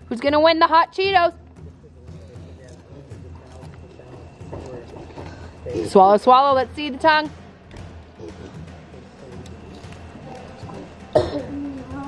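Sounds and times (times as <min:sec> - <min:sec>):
faint voices murmuring: 0:01.6 - 0:06.9, 0:07.6 - 0:12.0.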